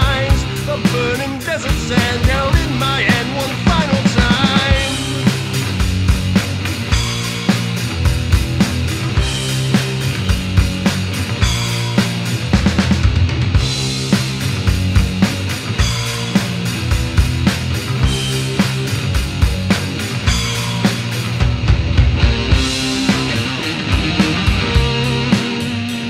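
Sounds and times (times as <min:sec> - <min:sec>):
rock band music: 0:00.0 - 0:26.0
steady drum beat: 0:00.0 - 0:26.0.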